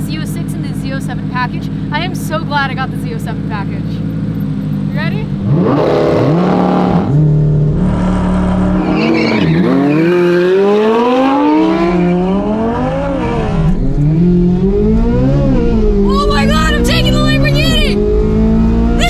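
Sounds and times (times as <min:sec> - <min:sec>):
car engines at full throttle: 0:00.0 - 0:19.0.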